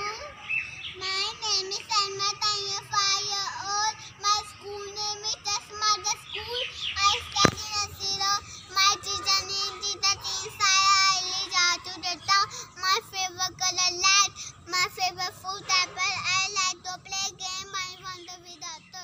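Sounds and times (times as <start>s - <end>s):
young child singing: 0.0s - 19.0s.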